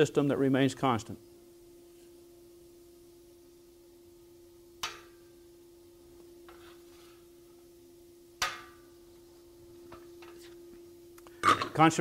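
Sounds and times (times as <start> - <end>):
sharp metallic clack: 4.8 - 5.2.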